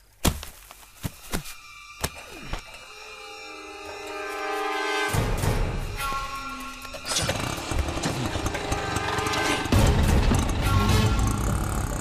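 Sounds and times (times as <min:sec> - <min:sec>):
small engine running: 0:07.0 - 0:12.0.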